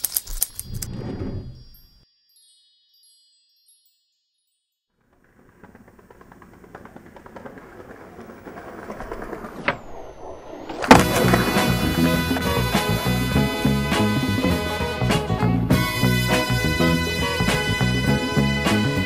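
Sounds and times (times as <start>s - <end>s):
skateboard rolling on rough pavement: 5.0s - 19.0s
skateboard clack: 5.2s - 13.2s.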